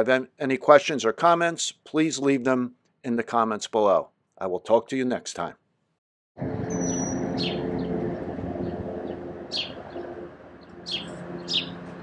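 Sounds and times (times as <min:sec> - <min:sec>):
birds chirping: 0:06.6 - 0:12.0.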